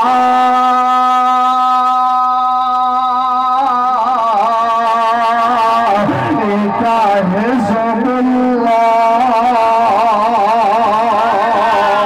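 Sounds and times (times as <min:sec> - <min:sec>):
man intoning with vibrato: 0:00.0 - 0:12.0.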